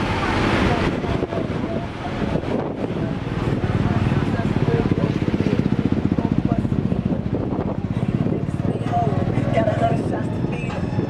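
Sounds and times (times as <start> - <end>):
background voices: 0.0 - 11.0.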